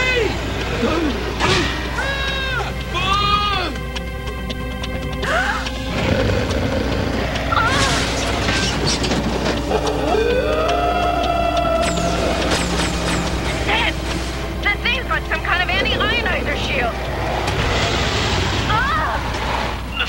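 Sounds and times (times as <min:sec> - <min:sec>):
cartoon action music: 0:00.0 - 0:19.4.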